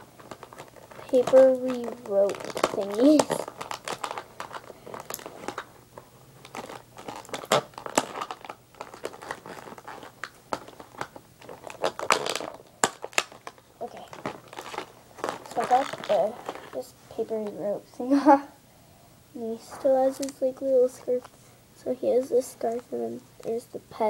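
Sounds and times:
toy packaging crinkling: 0:00.2 - 0:05.8, 0:06.4 - 0:16.9, 0:19.7 - 0:21.3.

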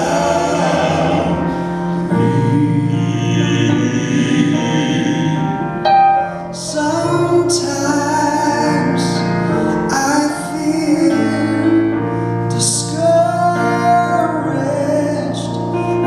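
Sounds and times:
man singing a hymn: 0:00.0 - 0:16.0
piano: 0:00.0 - 0:16.0.

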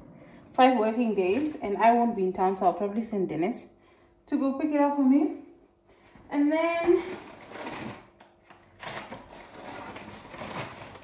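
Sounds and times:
rummaging through a bag: 0:07.0 - 0:11.0.

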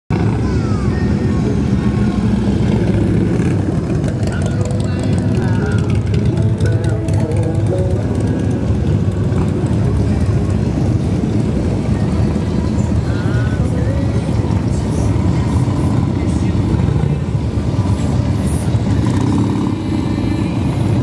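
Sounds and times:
motorcycle engines rumbling: 0:00.1 - 0:21.0.

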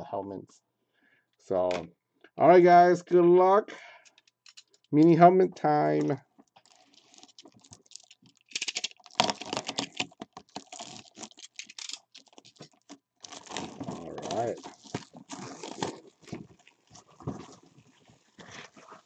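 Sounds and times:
plastic wrap crackling and tearing: 0:06.4 - 0:19.0.

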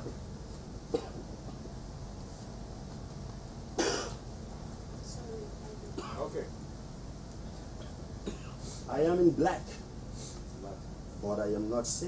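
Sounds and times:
person coughing: 0:00.9 - 0:01.2, 0:03.8 - 0:04.2, 0:06.0 - 0:06.3, 0:07.8 - 0:08.6.

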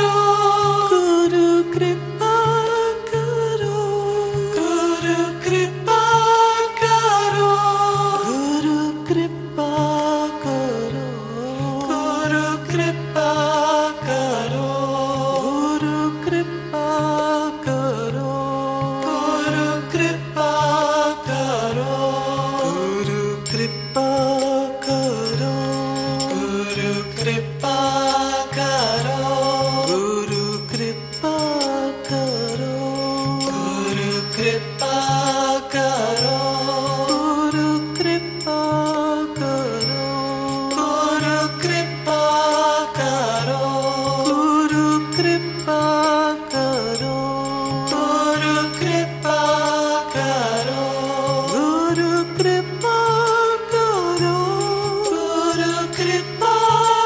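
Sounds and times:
instrumental accompaniment: 0:00.0 - 0:57.0
person singing devotional song: 0:00.0 - 0:57.0
steady drone: 0:18.0 - 0:57.0
light percussion ticks: 0:22.5 - 0:57.0.

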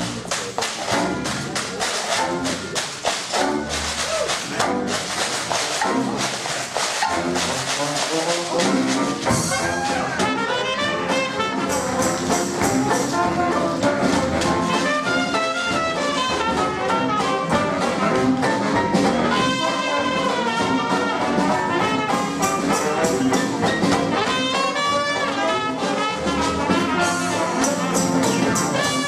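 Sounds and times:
traditional jazz band playing: 0:00.0 - 0:29.0.

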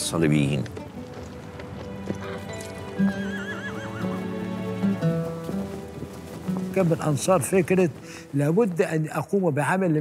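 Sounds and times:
background music: 0:00.0 - 0:10.0
horse whinnying: 0:01.9 - 0:04.4.

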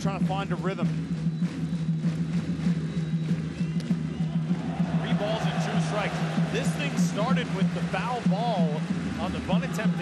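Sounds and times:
drums beating a quick rhythm: 0:00.0 - 0:10.0.

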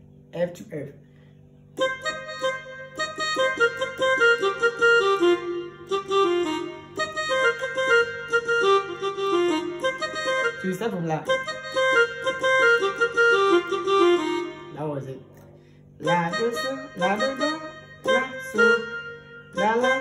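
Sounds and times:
electronic keyboard run of notes: 0:00.0 - 0:20.0.

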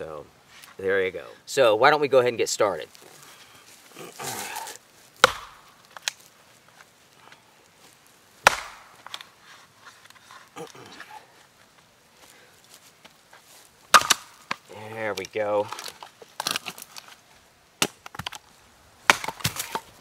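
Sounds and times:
axe chopping into log: 0:05.2 - 0:05.7, 0:08.4 - 0:09.2, 0:13.9 - 0:14.6, 0:17.8 - 0:18.4, 0:19.1 - 0:19.9.

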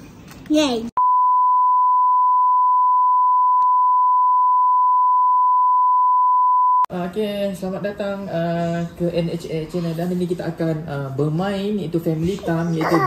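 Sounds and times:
test signal tone: 0:01.0 - 0:06.9.

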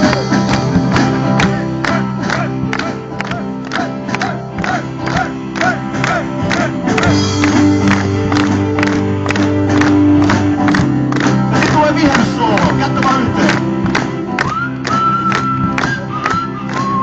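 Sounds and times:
drums keeping steady beat: 0:00.0 - 0:17.0
live band playing: 0:00.0 - 0:17.0.

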